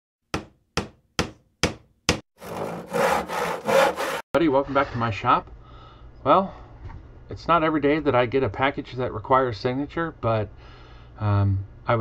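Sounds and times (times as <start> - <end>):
sharp knocks on wood: 0.3 - 2.2
saw cutting wood: 2.4 - 4.3.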